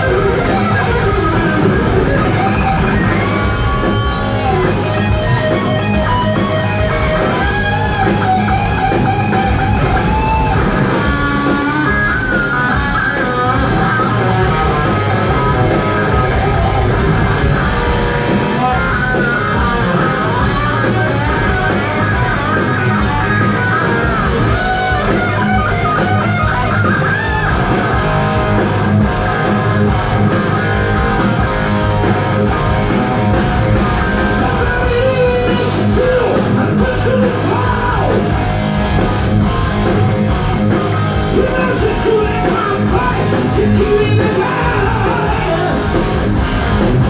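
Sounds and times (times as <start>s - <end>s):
heavy metal band playing live: 0.0s - 47.0s.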